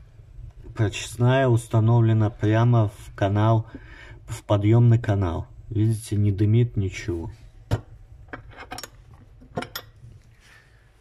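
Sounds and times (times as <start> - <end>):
metal door and latch clinking: 8.4 - 10.0.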